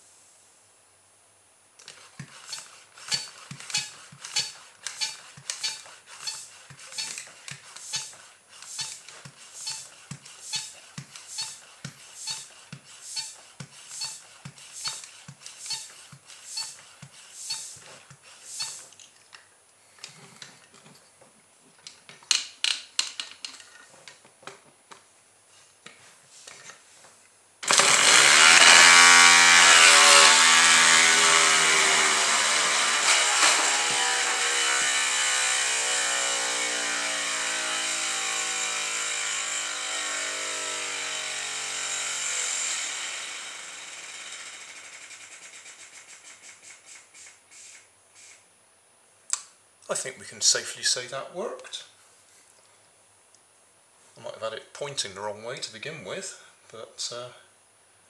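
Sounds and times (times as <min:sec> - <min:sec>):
toy air engine running: 0:01.8 - 0:18.9, 0:27.6 - 0:48.4.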